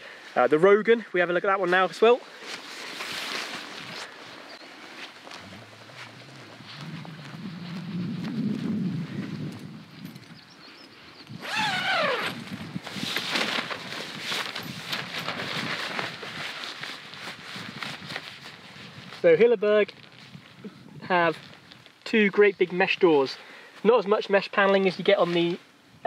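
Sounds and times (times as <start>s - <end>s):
tent fabric rustling and flapping: 0.2s - 10.2s, 11.4s - 22.5s
wind rumble: 5.2s - 19.2s.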